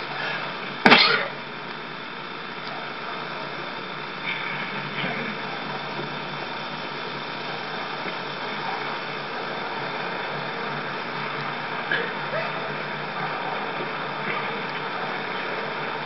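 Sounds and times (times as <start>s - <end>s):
mechanical whirring hiss: 0.0s - 16.0s.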